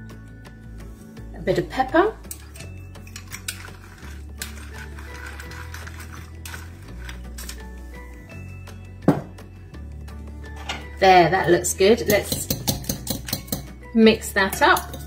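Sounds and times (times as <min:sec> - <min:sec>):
background music with bass line: 0:00.0 - 0:15.0
pepper mill grinding: 0:02.3 - 0:07.8, 0:12.0 - 0:13.7, 0:14.5 - 0:15.0.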